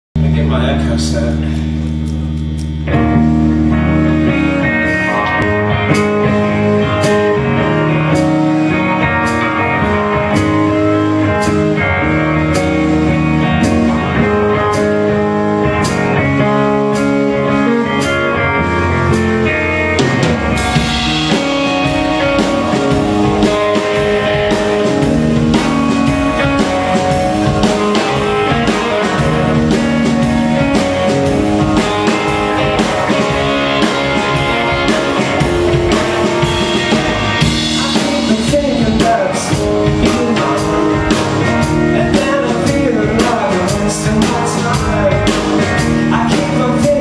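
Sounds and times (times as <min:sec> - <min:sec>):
rock band playing: 0:00.2 - 0:47.0.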